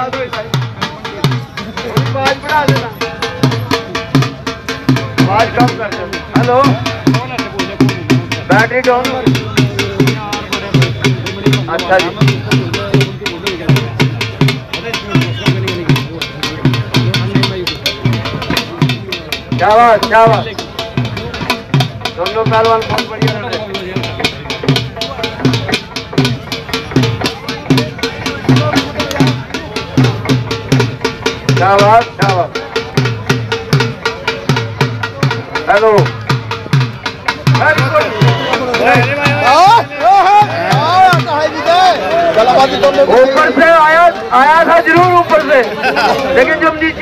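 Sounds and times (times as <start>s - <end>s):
drum-led music: 0.0s - 47.0s.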